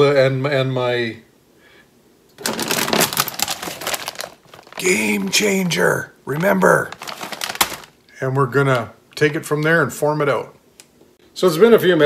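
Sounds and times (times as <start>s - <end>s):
plastic bag crinkling: 2.4s - 8.1s.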